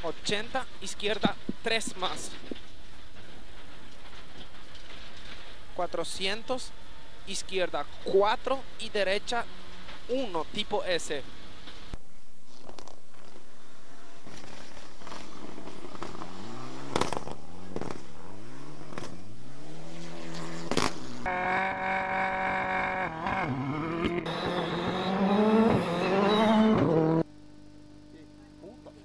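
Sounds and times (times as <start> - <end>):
faint steady hum: 0.0 - 22.9, 24.3 - 29.0
sharp exhaust cracks: 11.6 - 27.3
rally car engine revving: 14.4 - 27.3.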